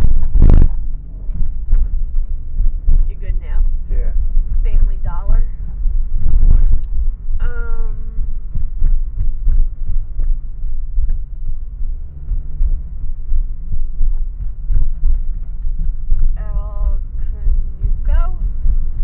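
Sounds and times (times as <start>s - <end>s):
car driving rumble from inside: 0.0s - 19.0s.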